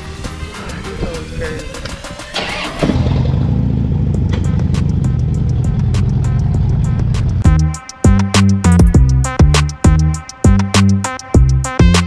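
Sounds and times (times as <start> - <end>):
background music with a beat: 0.0 - 2.9, 4.1 - 12.0
motorcycle engine cranking: 2.3 - 5.6
motorcycle engine idling: 2.9 - 7.6.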